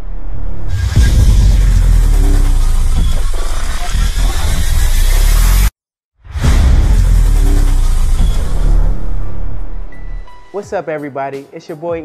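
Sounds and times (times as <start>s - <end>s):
loud low rumble: 0.0s - 5.7s, 6.3s - 10.2s
deep bass hit: 0.6s - 10.3s.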